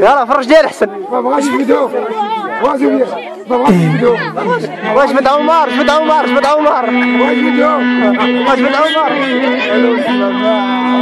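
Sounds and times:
violin melody: 0:03.9 - 0:11.0.

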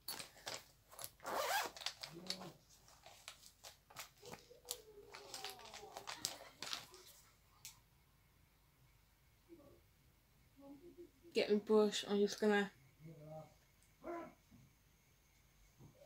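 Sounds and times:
zip pulled open: 0:01.2 - 0:01.9
makeup items clicking and rustling: 0:01.8 - 0:07.1.

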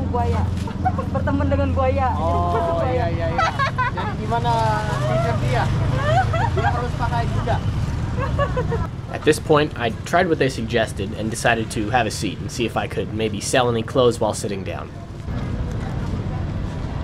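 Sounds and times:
street traffic engines drone: 0:00.0 - 0:17.0
people talking: 0:09.1 - 0:14.9.

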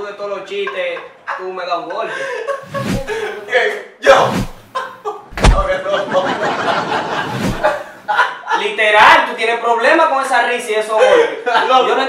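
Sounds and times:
man talking: 0:03.2 - 0:04.4.

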